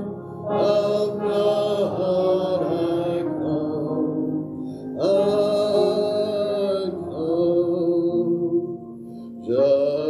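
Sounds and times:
man singing a hymn unaccompanied: 0.0s - 10.0s.

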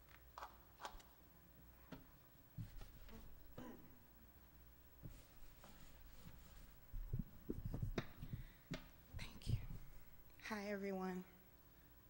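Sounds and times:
microphone handling thumps: 6.9s - 10.0s.

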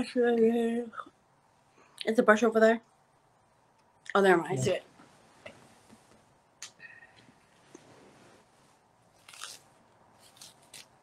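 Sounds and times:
faint rustling: 4.6s - 10.9s.

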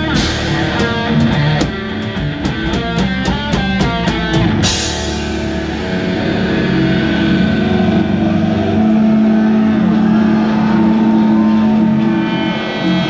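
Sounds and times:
death metal band: 0.0s - 13.0s.

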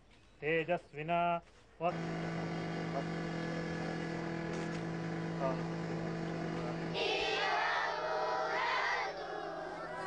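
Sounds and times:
steady drone: 1.9s - 10.0s
chanted prayer: 6.9s - 10.0s.

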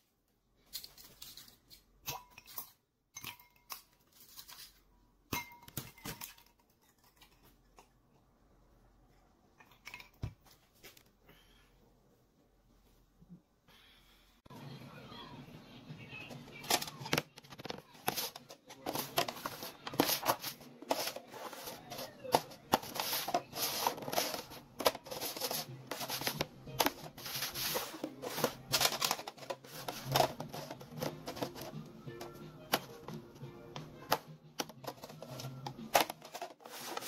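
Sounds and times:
background music: 18.0s - 37.0s.

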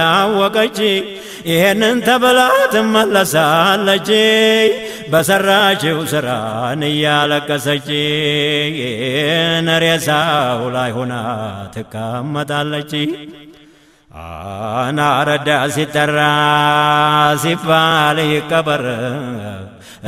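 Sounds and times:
man chanting devotional verse: 0.0s - 20.0s.

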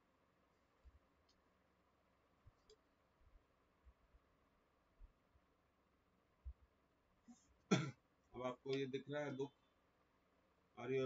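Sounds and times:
man clearing throat: 7.7s - 8.0s
man speaking: 8.4s - 9.6s, 10.8s - 11.0s.

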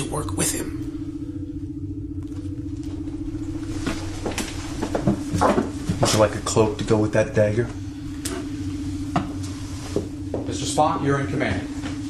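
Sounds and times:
low spaceship engine hum: 0.0s - 12.0s.

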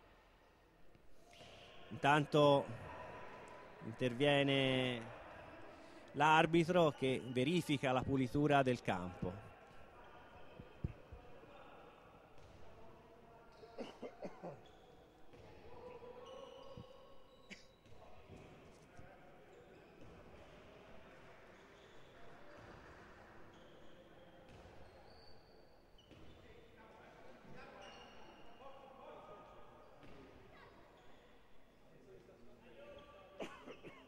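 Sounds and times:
ball bouncing on court floor: 10.6s - 11.2s.

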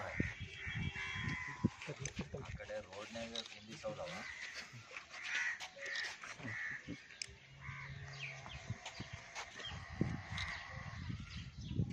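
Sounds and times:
bird calling: 3.3s - 11.5s.

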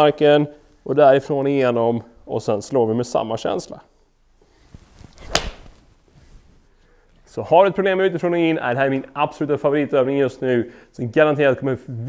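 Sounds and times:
golf club swishing: 4.4s - 6.7s
golf club striking ball: 5.3s - 5.6s.

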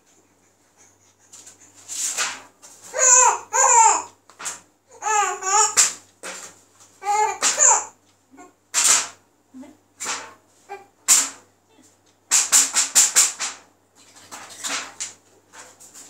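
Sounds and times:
baby laughing and babbling: 2.8s - 4.2s, 4.9s - 6.0s, 7.0s - 8.6s, 10.7s - 11.0s.

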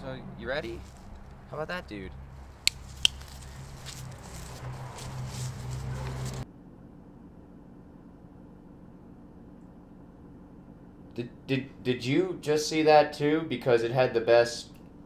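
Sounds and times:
low street rumble: 0.0s - 15.0s.

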